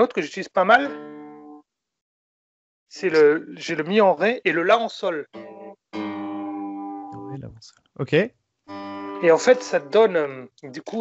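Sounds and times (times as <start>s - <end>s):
acoustic guitar chord ringing: 8.7s - 10.1s.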